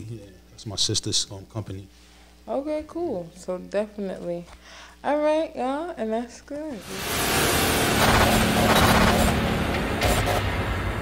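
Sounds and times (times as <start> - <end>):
loud crackling static: 6.8 - 11.0.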